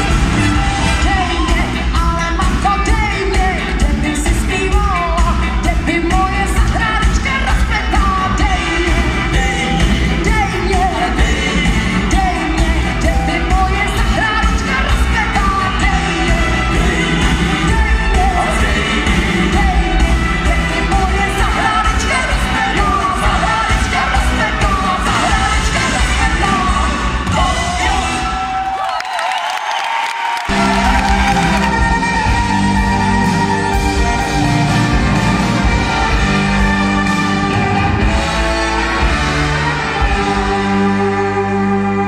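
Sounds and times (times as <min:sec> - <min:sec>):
folk-rock band playing live: 0:00.0 - 0:27.8, 0:30.5 - 0:42.0
people singing: 0:05.9 - 0:28.2.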